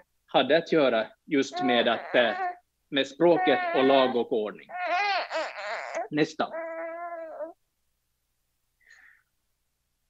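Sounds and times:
infant vocalizing: 1.5s - 2.6s, 3.2s - 7.6s.

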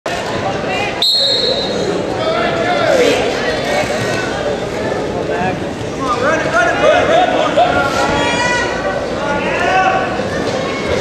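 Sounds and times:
crowd chatter: 0.1s - 11.0s
referee's whistle blast: 1.0s - 1.8s.

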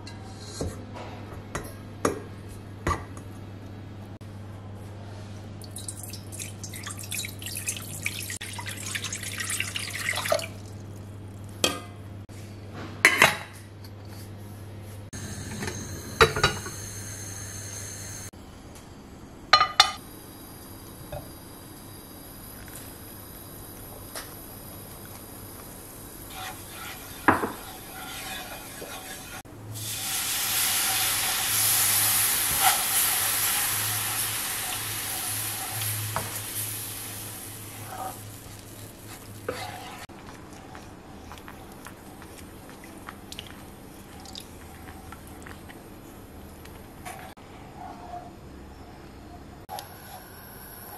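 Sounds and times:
water pouring into a pot: 5.6s - 10.8s, 29.8s - 39.0s
liquid sizzling in a hot pan: 26.3s - 40.1s.

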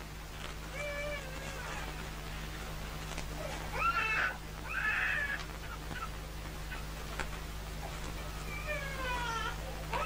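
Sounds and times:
steady low hum: 0.0s - 10.0s
animal calling: 3.4s - 7.0s, 7.8s - 10.0s.

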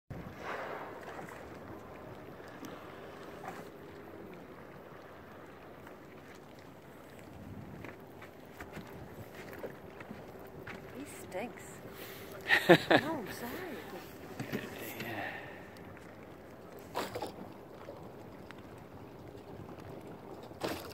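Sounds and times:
light wind: 0.1s - 20.9s
water noise: 0.1s - 20.9s.

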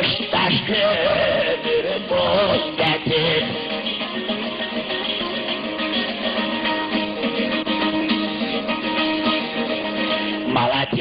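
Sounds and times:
person singing folk song: 0.0s - 11.0s
plucked lute notes: 0.0s - 11.0s.

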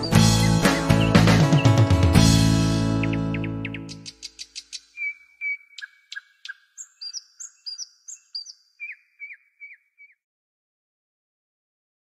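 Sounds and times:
birds chirping and whistling: 0.0s - 2.2s, 2.8s - 10.2s.

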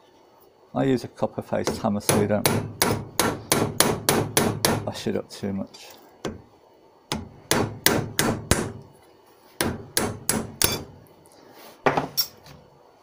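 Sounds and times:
hammer striking metal: 1.7s - 4.9s, 7.1s - 8.8s, 9.6s - 11.0s.

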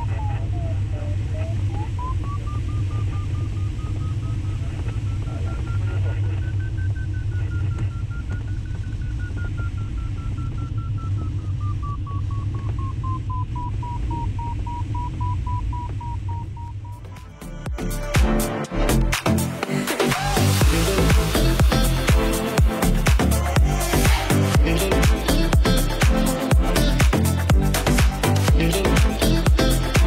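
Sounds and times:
airflow rush in cockpit: 0.0s - 16.9s
variometer beeping rapidly: 1.5s - 17.8s.

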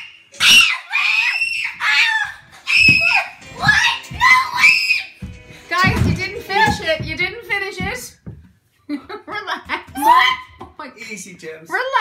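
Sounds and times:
children shrieking: 0.4s - 5.2s, 10.0s - 10.6s.

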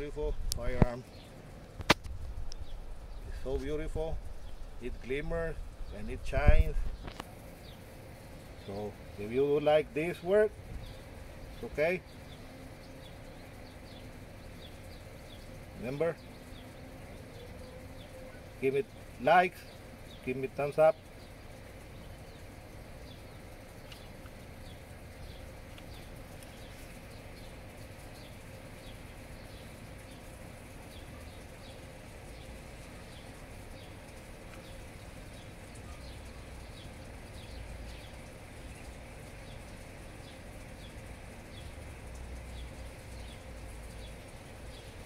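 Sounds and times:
low outdoor rumble: 0.0s - 45.0s.

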